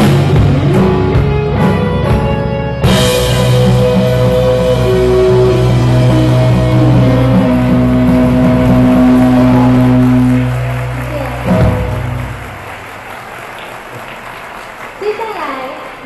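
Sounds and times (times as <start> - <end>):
live rock band final chord: 0.0 - 12.9.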